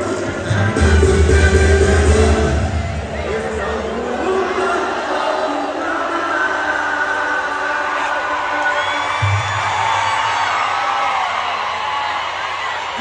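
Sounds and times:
live band music over speakers: 0.0 - 3.9
audience whooping: 7.8 - 13.0.

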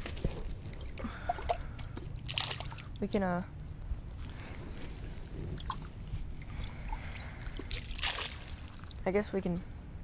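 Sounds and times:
pond water sloshing: 0.0 - 3.1, 4.2 - 9.1
water splash: 2.3 - 2.9, 7.6 - 8.9.

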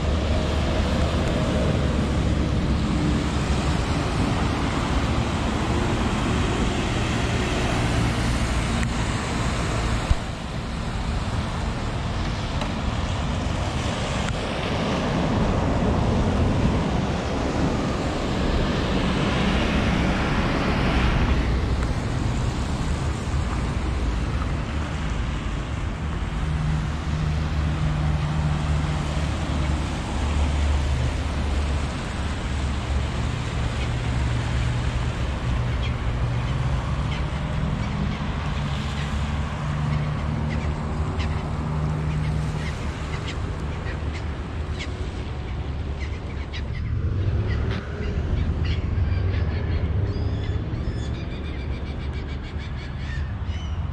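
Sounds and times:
cars passing on wet road: 0.0 - 53.9.

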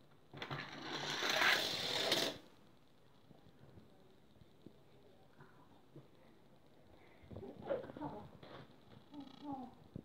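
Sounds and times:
plastic toy ramp rattling: 0.4 - 2.4.

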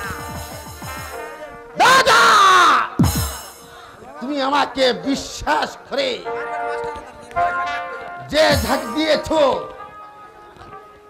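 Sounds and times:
actor yelling: 1.7 - 3.0, 8.3 - 9.7.

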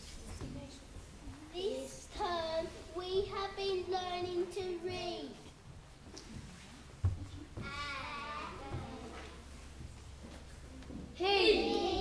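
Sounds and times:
boys singing held notes: 11.2 - 12.0.

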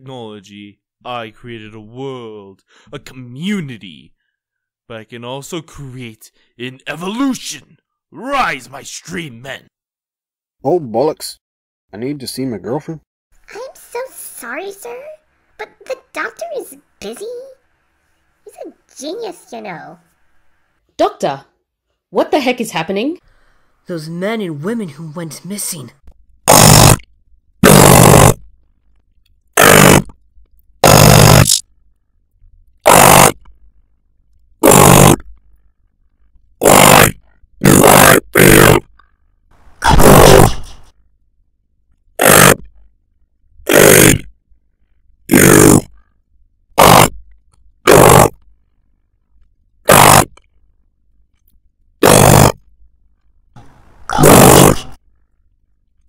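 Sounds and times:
distorted noise blasts: 30.8 - 31.6.

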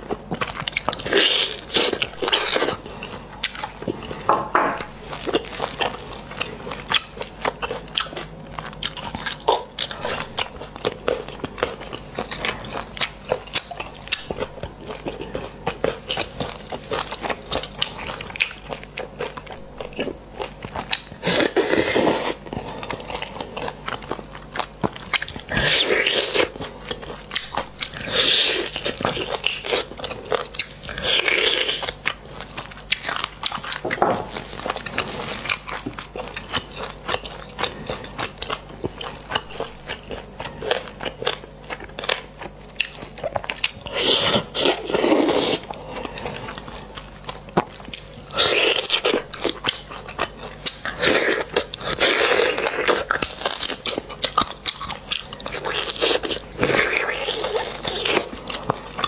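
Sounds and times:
wet chewing and smacking: 0.0 - 59.0.

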